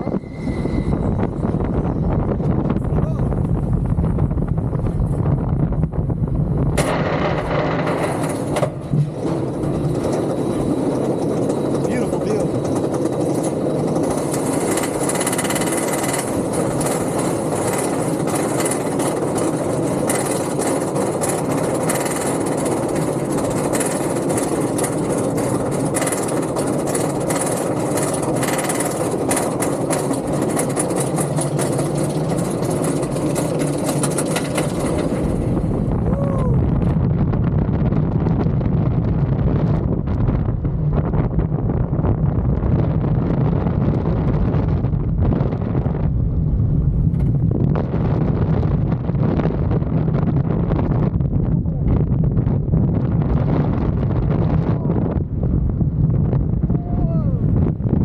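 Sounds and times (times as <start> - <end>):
roller coaster mechanical rumble: 0.0 - 58.0
rapid chain lift clacks: 9.2 - 35.5.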